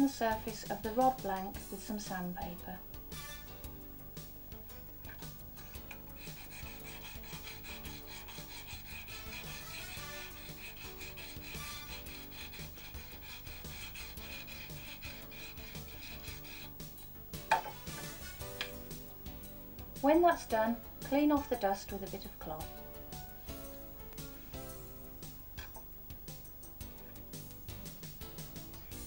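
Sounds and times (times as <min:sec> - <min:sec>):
background music: 0:00.0 - 0:29.0
sandpaper rubbing on rod: 0:05.2 - 0:17.0, 0:23.5 - 0:24.9.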